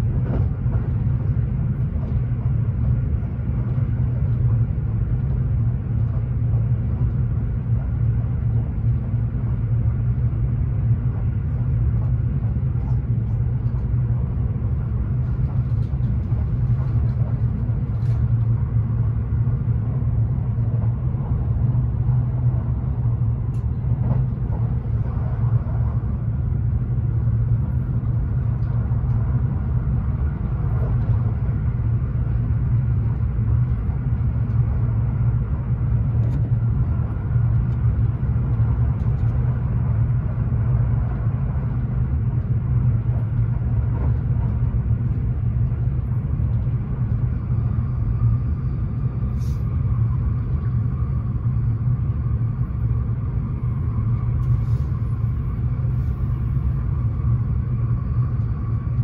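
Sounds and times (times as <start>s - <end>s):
train wheels rumbling on rail: 0.0s - 59.0s
faint steady whine: 0.9s - 59.0s.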